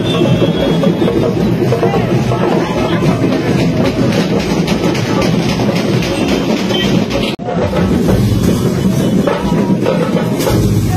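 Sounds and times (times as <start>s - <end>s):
drums beaten fast with sticks: 0.0s - 10.9s.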